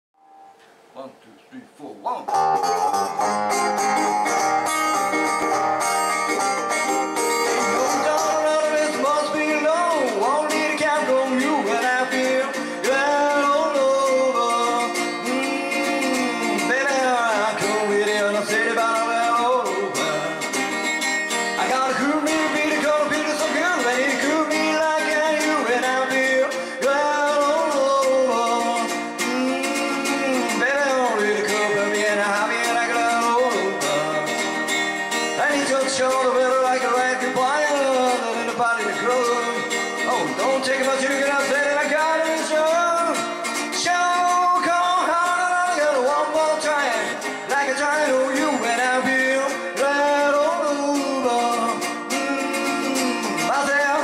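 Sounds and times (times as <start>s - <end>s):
acoustic guitar rockabilly rhythm: 2.1s - 54.0s
man singing: 7.4s - 54.0s.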